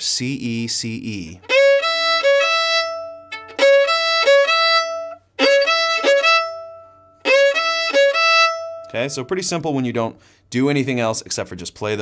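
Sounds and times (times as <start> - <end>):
solo fiddle phrase: 0.0 - 10.4.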